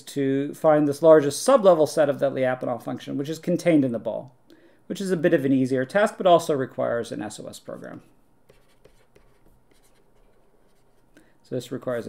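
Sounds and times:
stylus scratching and tapping on screen: 0:07.6 - 0:11.2.

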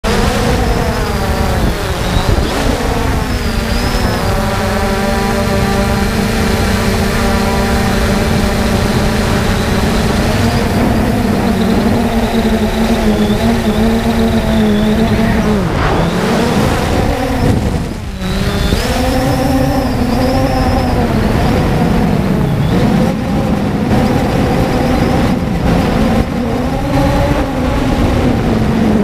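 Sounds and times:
drone motors and propellers whining: 0:00.0 - 0:29.0.

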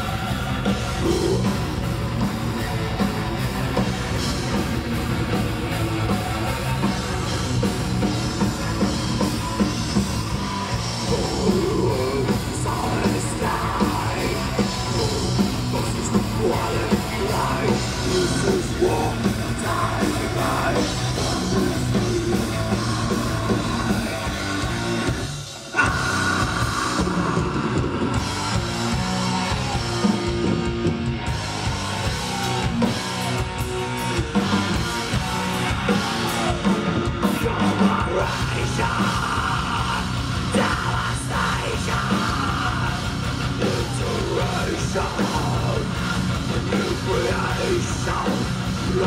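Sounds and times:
person singing: 0:00.0 - 0:01.6, 0:10.6 - 0:24.3, 0:25.7 - 0:28.4, 0:32.3 - 0:49.0
distorted electric guitars: 0:00.0 - 0:49.0
drum kit: 0:00.0 - 0:49.0.

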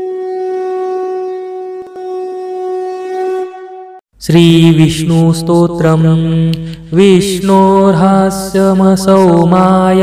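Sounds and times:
conch shell blown: 0:00.0 - 0:04.0.

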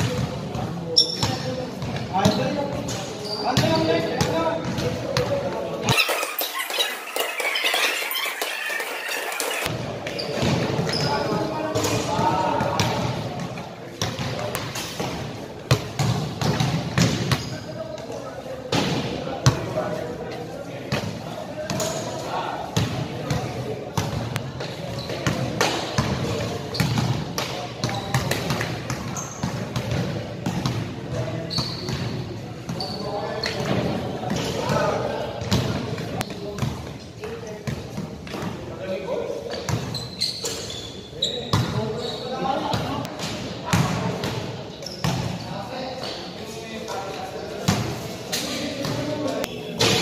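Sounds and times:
basketballs bouncing in gym: 0:00.0 - 0:19.7, 0:22.7 - 0:38.7, 0:39.5 - 0:41.8, 0:42.5 - 0:45.4
people talking: 0:00.0 - 0:39.8, 0:40.5 - 0:50.0.

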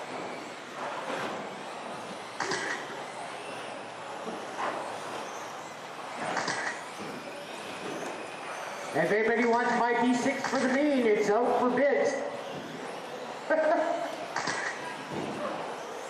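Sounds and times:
rc car motors and tyres: 0:00.0 - 0:16.0.

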